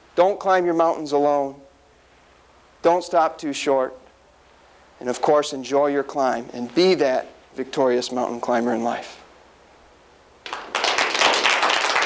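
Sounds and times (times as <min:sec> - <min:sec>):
audience applauding: 0:10.4 - 0:12.0.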